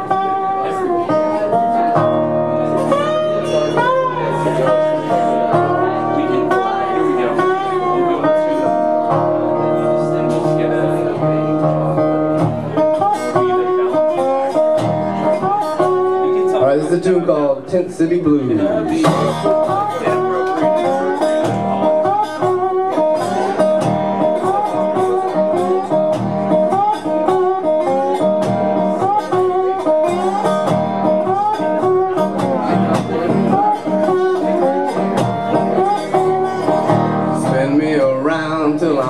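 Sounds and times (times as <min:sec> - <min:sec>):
resonator guitar blues riff: 0:00.0 - 0:39.0.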